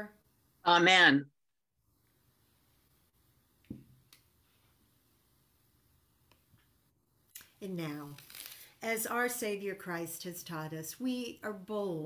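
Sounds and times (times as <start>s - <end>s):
soft thump: 3.7s - 4.0s.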